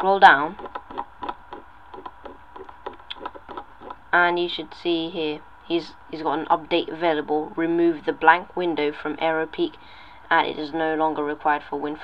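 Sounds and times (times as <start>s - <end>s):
mouse scroll wheel clicks: 0.6s - 4.0s.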